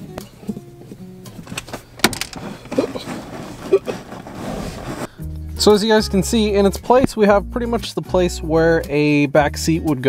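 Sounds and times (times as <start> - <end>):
quiet background music: 0.0 - 10.0
clicks and rattling of plastic bin: 1.4 - 4.3.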